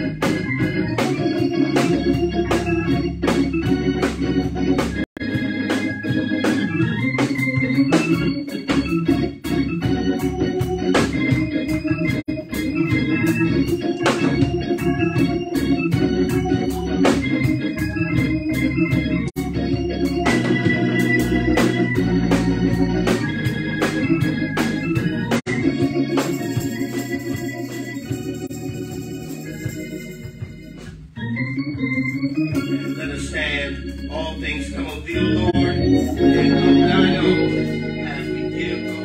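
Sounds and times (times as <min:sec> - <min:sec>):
organ-style keyboard music: 0:00.0 - 0:39.0.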